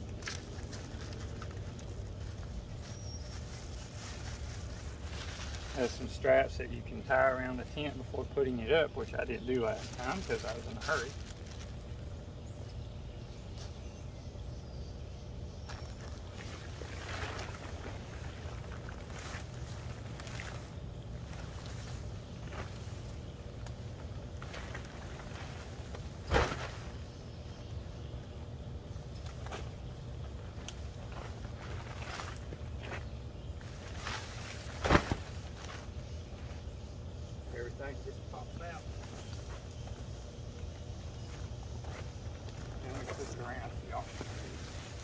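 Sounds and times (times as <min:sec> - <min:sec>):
tent frame snapping: 0:34.8 - 0:35.3.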